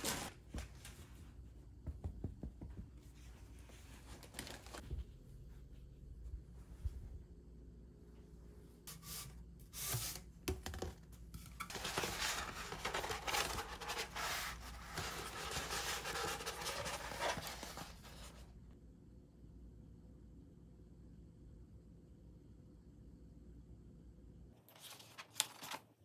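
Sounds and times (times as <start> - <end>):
paper poster rustling and crinkling: 0.0 - 1.6, 3.0 - 5.6, 8.8 - 18.6, 24.6 - 26.0.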